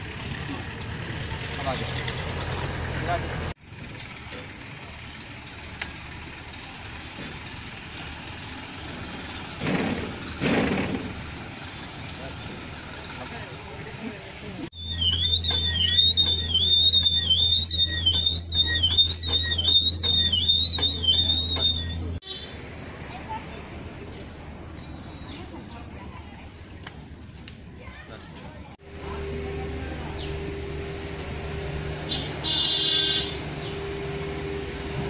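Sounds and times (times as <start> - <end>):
steady background noise: 9.2 - 31.9
warbling high-pitched electronic tone: 14.8 - 22.0.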